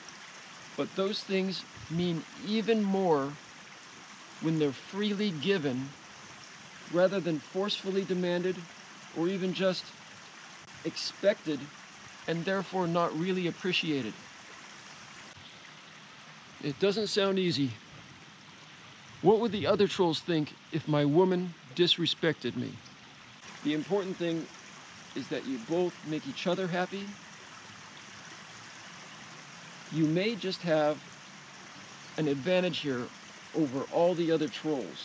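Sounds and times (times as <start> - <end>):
stream running: 0.0 - 35.0.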